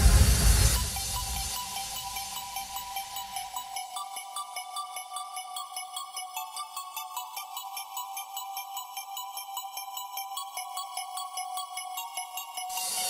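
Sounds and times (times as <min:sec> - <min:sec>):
bell-like synth pattern: 0:00.5 - 0:13.0.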